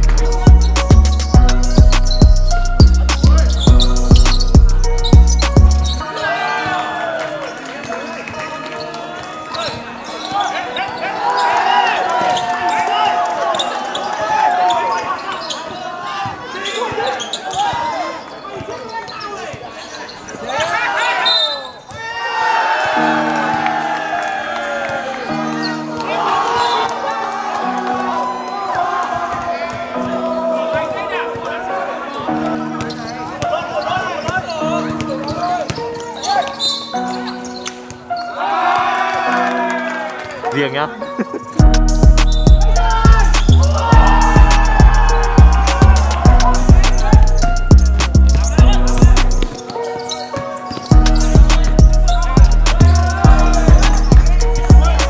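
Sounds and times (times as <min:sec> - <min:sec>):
background music with chords: 0:00.0 - 0:06.0, 0:39.2 - 0:55.0
players shouting: 0:05.1 - 0:41.0, 0:42.1 - 0:55.0
voices: 0:42.2 - 0:55.0
basketball bouncing on court: 0:46.3 - 0:54.9.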